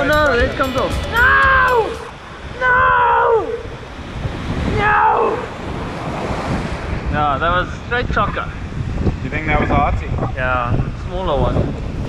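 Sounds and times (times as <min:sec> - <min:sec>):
wind buffeting microphone: 0:01.3 - 0:12.0.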